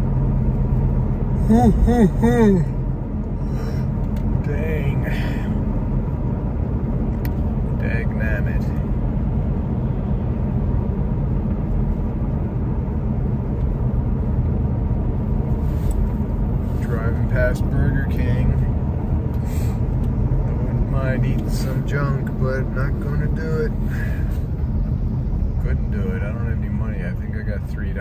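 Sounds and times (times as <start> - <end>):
road and engine rumble: 0.0 - 28.0.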